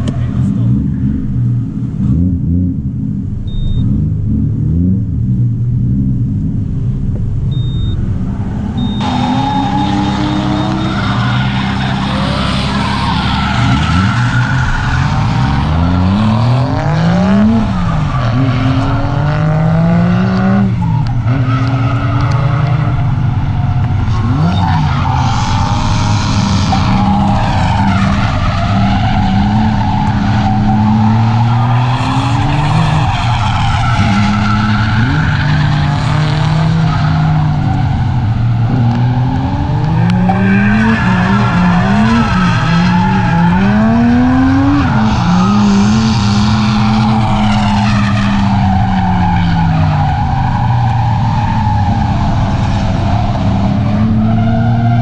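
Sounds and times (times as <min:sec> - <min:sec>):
car engine revving: 0:00.0 - 0:55.0
tyres squealing and skidding: 0:08.8 - 0:55.0.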